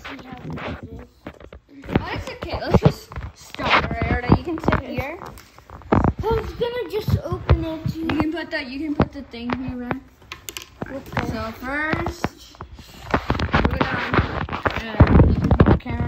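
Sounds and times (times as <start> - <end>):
rustling and clatter: 0.0 - 16.0.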